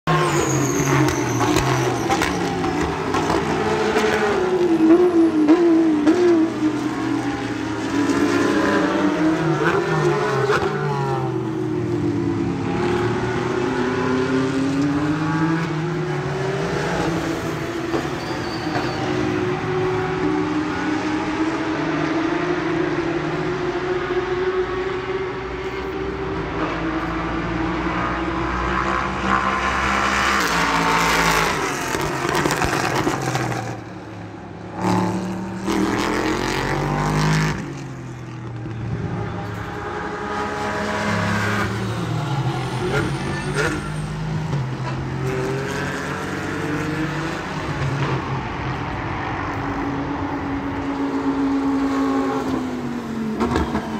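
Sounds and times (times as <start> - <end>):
racing car engines revving: 0.0 - 53.9.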